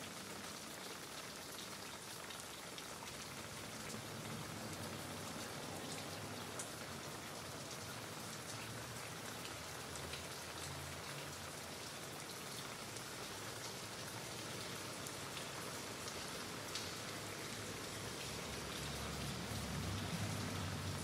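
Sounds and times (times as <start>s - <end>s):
rain-like patter: 0.0s - 21.0s.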